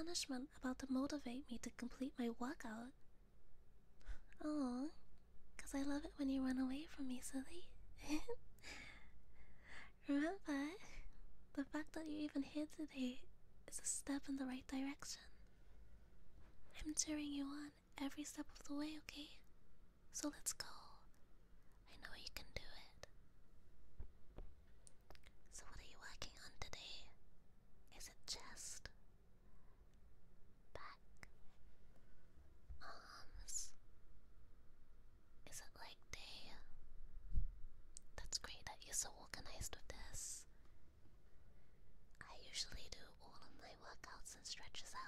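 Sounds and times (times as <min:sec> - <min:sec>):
woman whispering: 0:00.0 - 0:03.0, 0:04.0 - 0:05.0, 0:05.6 - 0:08.4, 0:09.9 - 0:15.4, 0:16.7 - 0:19.5, 0:20.1 - 0:21.2, 0:21.8 - 0:23.1, 0:25.2 - 0:27.2, 0:27.9 - 0:29.0, 0:30.7 - 0:31.4, 0:32.8 - 0:33.8, 0:35.4 - 0:36.7, 0:38.1 - 0:40.5, 0:42.2 - 0:45.0.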